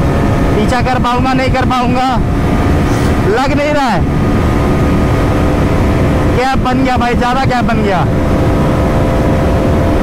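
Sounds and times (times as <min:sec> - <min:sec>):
motorcycle engine running: 0:00.0 - 0:10.0
wind buffeting microphone: 0:00.0 - 0:10.0.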